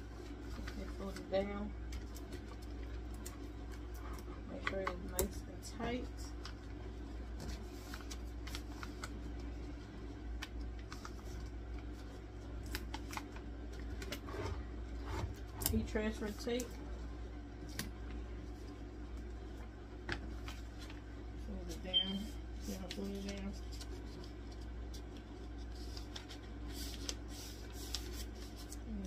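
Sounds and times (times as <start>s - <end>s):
steady low hum: 0.0s - 29.0s
paper rustling: 0.1s - 5.2s, 5.8s - 14.5s, 20.1s - 29.0s.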